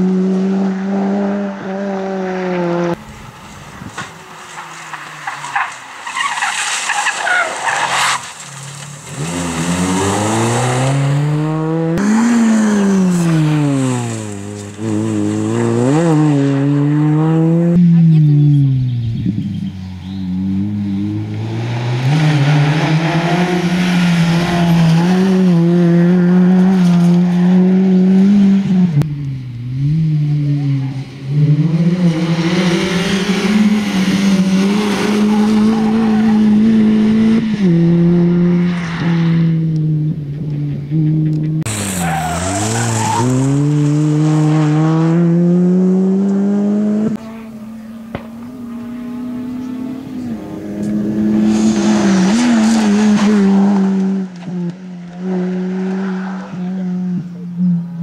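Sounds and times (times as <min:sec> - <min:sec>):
rally car engine revving: 0:00.0 - 0:58.0.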